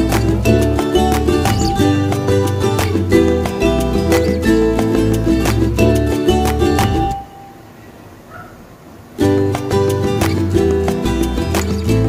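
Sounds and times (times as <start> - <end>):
ukulele music: 0.0 - 7.6, 9.1 - 12.0
faint steady low noise: 0.0 - 12.0.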